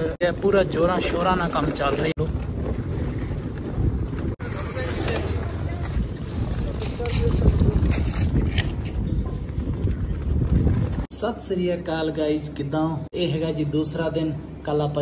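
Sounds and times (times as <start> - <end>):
wind buffeting microphone: 0.0 - 11.1.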